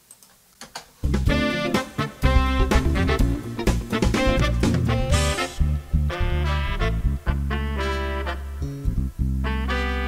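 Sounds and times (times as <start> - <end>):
funk backing track with horns: 1.0 - 10.0.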